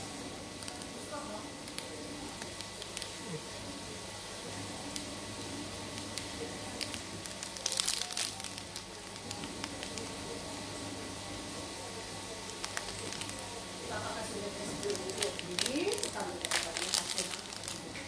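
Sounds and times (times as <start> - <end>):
steady hum: 0.0 - 18.0
plastic wrapper crinkling: 1.6 - 3.4, 6.0 - 10.1, 12.4 - 13.6, 14.4 - 18.0.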